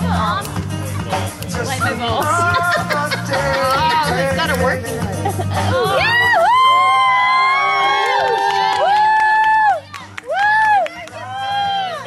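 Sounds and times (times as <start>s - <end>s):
faint background music: 0.0s - 12.0s
people whooping: 5.8s - 12.0s.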